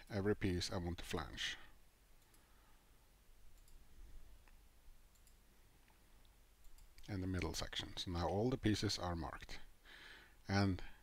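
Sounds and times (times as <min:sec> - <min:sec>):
faint mouse clicks: 0:02.2 - 0:02.5, 0:03.5 - 0:03.8, 0:04.4 - 0:07.6.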